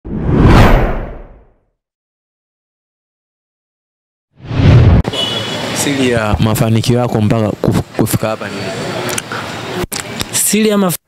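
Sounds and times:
deep whoosh: 0.1s - 1.5s, 4.4s - 5.1s.

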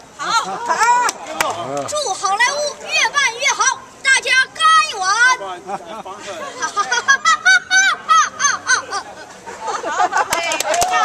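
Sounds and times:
boy vocalizing: 7.2s - 9.2s.

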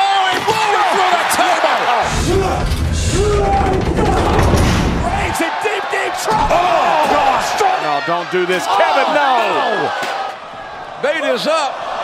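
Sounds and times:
loud low rumble with crashing: 2.0s - 5.4s.

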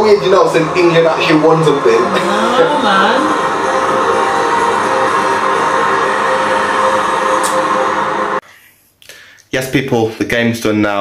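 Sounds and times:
music: 0.0s - 8.4s.

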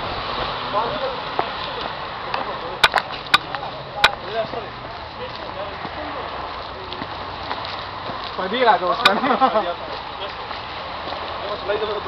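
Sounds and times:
distant voices: 0.0s - 12.0s.

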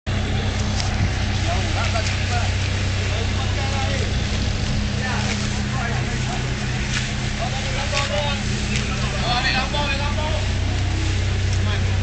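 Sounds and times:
heavy diesel engine idling: 0.1s - 12.0s.

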